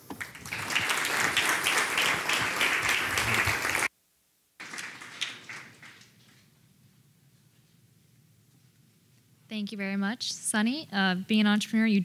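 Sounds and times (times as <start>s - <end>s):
audience applauding: 0.0s - 3.9s, 4.6s - 6.4s.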